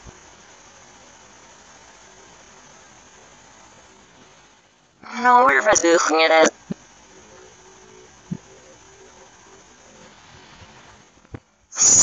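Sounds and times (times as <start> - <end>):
faint steady hiss: 0.0 - 12.0
low hum: 0.0 - 12.0.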